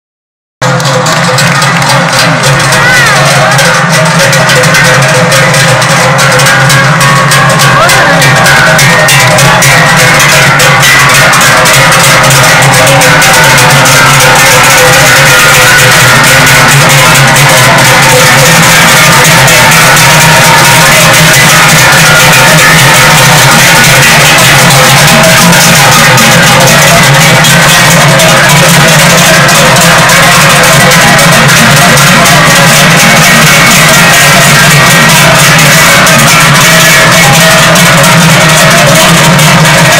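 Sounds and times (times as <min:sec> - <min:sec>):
cowbells clanging: 0:00.6 - 0:39.9.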